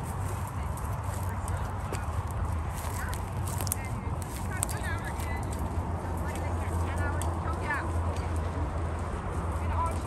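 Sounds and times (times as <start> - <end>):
footsteps through dry grass: 0.0 - 10.0.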